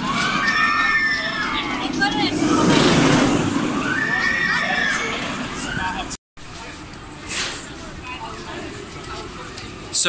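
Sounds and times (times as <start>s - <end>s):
riders screaming: 0.0s - 1.9s, 3.8s - 6.1s
roller coaster train rumbling: 0.0s - 10.0s.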